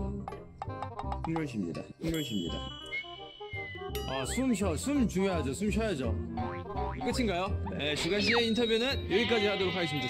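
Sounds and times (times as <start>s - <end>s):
man talking: 1.3s - 2.7s, 4.0s - 6.2s, 6.9s - 10.0s
comic boing music: 6.3s - 8.6s.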